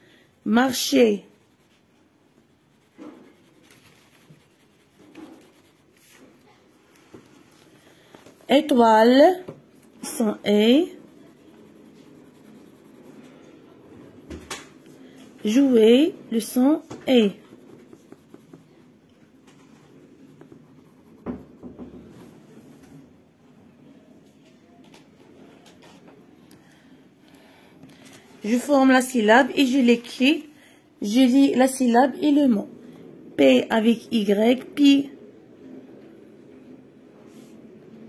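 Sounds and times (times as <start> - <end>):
pencil scratching on paper: 0.5 - 22.6.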